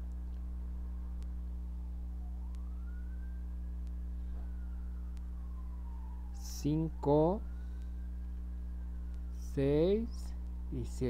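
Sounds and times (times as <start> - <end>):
steady low hum: 0.0 - 11.0
distant siren wailing: 0.7 - 11.0.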